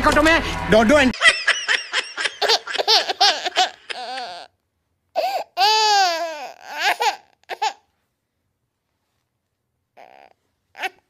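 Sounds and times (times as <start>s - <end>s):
high-pitched laughter: 1.2s - 4.5s.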